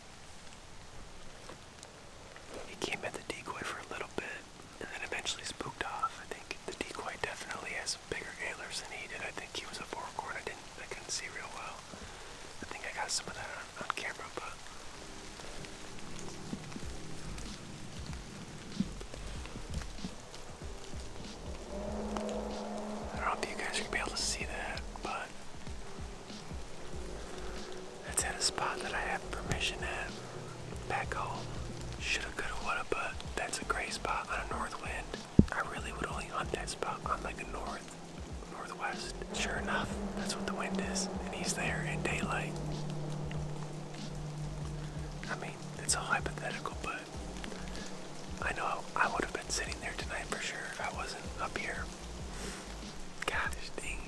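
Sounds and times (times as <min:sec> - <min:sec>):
soft background music: 0:00.3 - 0:54.0
man whispering: 0:02.5 - 0:15.5, 0:22.1 - 0:25.6, 0:27.2 - 0:42.9, 0:44.0 - 0:54.0.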